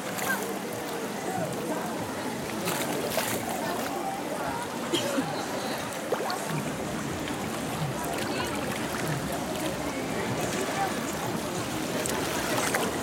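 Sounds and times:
many voices: 0:00.0 - 0:13.0
water sloshing and splashing: 0:00.0 - 0:13.0.

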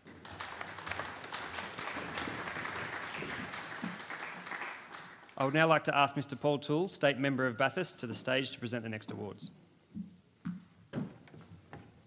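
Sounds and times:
footsteps on a stage: 0:09.9 - 0:12.0.

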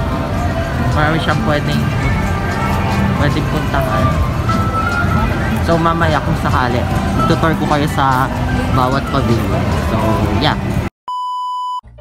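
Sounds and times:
music: 0:00.0 - 0:10.9
outdoor crowd noise: 0:00.0 - 0:10.9
high electronic beep: 0:11.1 - 0:11.8.

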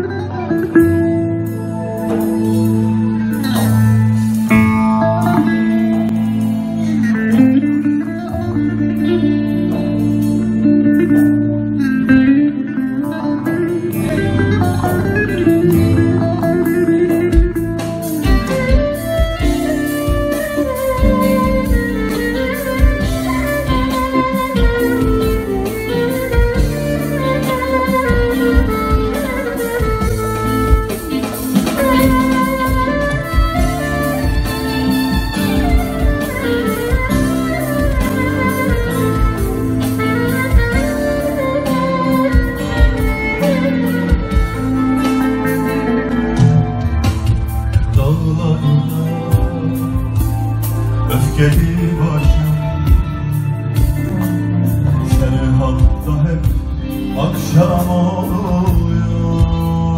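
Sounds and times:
electric guitar: 0:00.0 - 0:59.9
electric lute: 0:00.0 - 0:59.9
sustained keyboard chords: 0:00.0 - 0:59.9
steady drum beat: 0:13.9 - 0:59.9.

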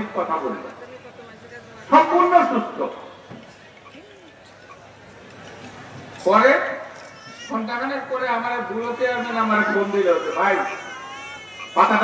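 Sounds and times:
man speaking over loudspeaker: 0:00.0 - 0:03.2, 0:06.2 - 0:10.9, 0:11.6 - 0:12.0.

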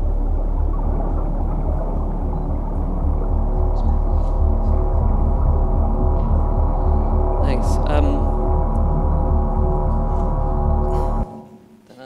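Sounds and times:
deep pulsing rumble: 0:00.0 - 0:11.5
droning soundtrack music: 0:00.0 - 0:12.0.

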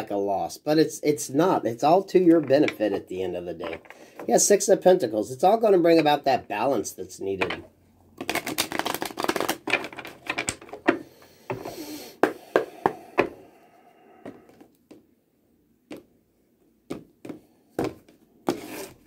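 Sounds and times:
cards being shuffled: 0:08.2 - 0:11.0, 0:18.5 - 0:19.0.

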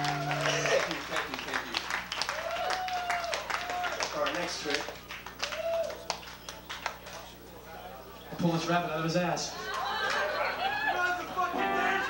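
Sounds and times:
amplifier hum: 0:00.0 - 0:01.2.

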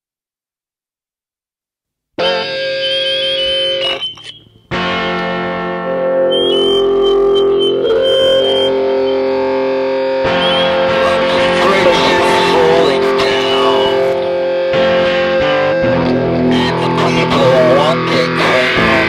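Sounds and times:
droning guitar music: 0:02.2 - 0:19.0.

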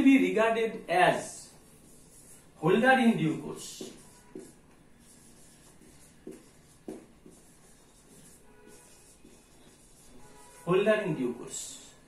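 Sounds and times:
marker pen writing on whiteboard: 0:01.0 - 0:12.0.

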